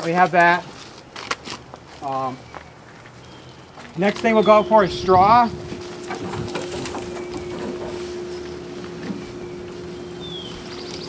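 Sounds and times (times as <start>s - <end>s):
dry straw rustling and crackling: 0.0s - 11.0s
steady hum: 4.0s - 11.0s.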